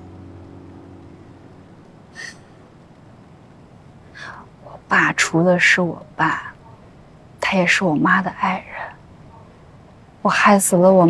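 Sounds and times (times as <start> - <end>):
low hum of held tones: 0.0 - 11.0
soft background hiss: 0.0 - 11.0.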